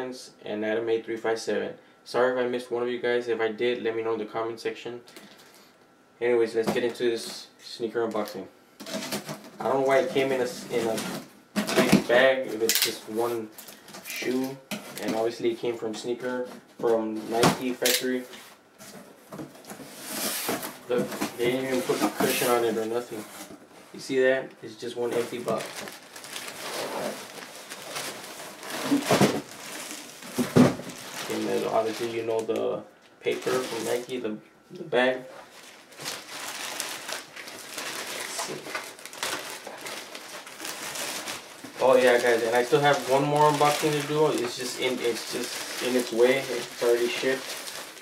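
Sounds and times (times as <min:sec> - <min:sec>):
cardboard rustling and scraping: 0:16.4 - 0:24.0, 0:25.0 - 0:32.3
plastic bag crinkling: 0:20.1 - 0:23.5, 0:24.9 - 0:34.2, 0:35.3 - 0:48.0.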